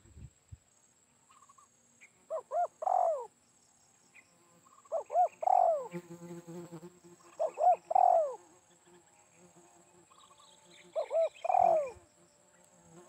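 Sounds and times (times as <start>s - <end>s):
dove cooing: 2.3s - 3.3s, 4.9s - 6.0s, 7.3s - 8.4s, 10.9s - 12.1s.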